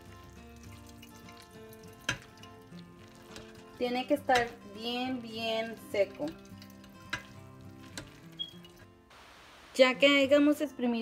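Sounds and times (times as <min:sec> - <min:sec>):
soft background music: 0:00.0 - 0:09.1, 0:09.7 - 0:11.0.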